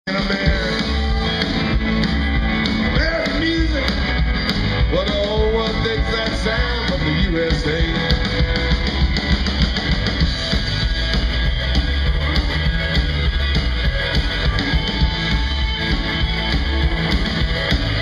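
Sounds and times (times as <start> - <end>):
rock band playing loud: 0.0 - 18.0.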